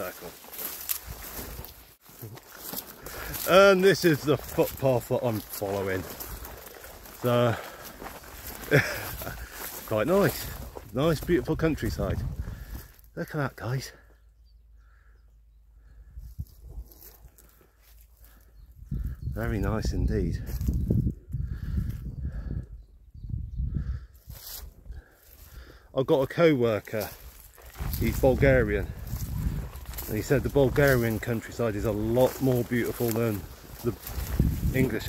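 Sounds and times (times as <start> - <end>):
crop stalks brushing against legs: 0.0 - 11.4, 26.8 - 35.0
footsteps: 0.0 - 13.0, 26.7 - 35.0
wind rumble on microphone: 10.4 - 12.9, 18.6 - 25.0, 27.7 - 32.4, 33.4 - 35.0.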